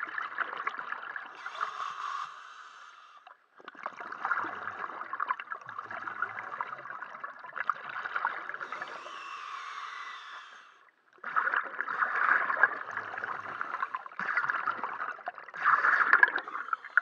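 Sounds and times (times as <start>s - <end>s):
underwater air bubbles rushing: 3.6s - 9.3s, 11.1s - 17.0s.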